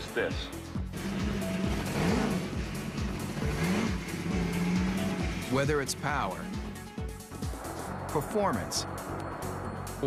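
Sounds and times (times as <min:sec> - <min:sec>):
music with steady beat: 0:00.0 - 0:10.0
motorcycle engine revving: 0:00.8 - 0:07.6.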